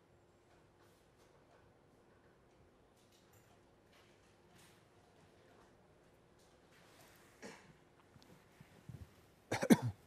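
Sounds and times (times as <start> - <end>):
faint small noises: 0.0 - 10.0
man coughing: 9.5 - 10.0.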